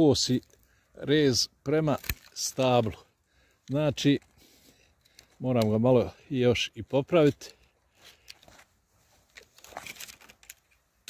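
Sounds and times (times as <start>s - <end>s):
pruning shears snipping: 1.7s - 2.8s.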